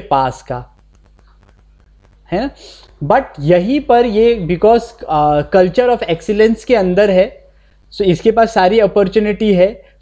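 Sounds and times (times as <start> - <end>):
man speaking: 0.0 - 0.8, 2.2 - 9.9.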